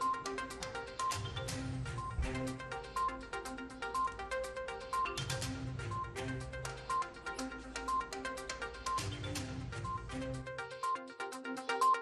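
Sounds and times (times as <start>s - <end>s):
news music with ticking beat: 0.0s - 12.0s.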